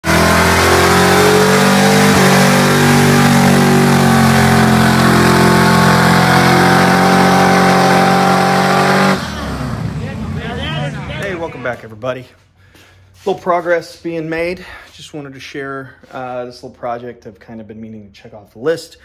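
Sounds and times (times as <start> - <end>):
car engine at high revs: 0.0 - 11.6.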